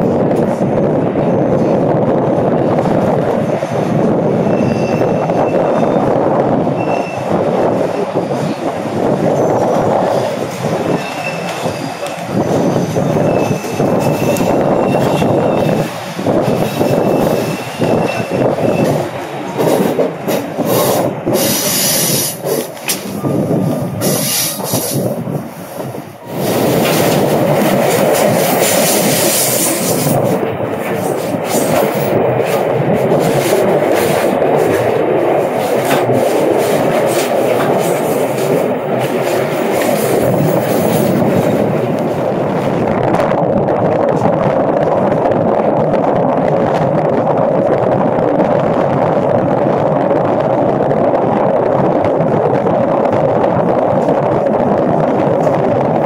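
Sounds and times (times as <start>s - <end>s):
rushing wind: 0.0s - 56.0s
train wheel and rail noise: 0.0s - 56.0s
high wheel squeal: 4.4s - 7.3s, 10.8s - 19.9s.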